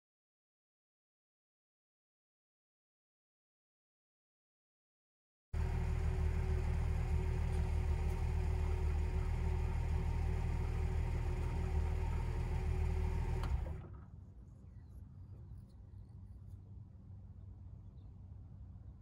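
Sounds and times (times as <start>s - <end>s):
car engine idling: 5.6s - 14.1s
faint low rumble: 5.6s - 19.0s.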